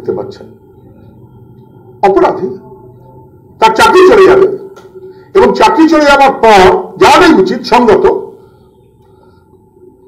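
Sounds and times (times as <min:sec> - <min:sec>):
faint room hum: 0:00.0 - 0:10.0
man speaking: 0:05.3 - 0:08.4.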